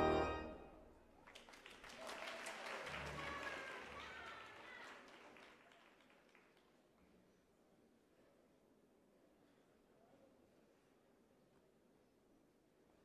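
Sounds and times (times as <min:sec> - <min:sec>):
audience applause: 0:01.2 - 0:06.7.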